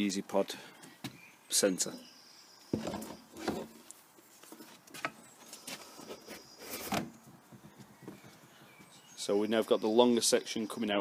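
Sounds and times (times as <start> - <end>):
plastic scraping and knocking: 2.7 - 3.8.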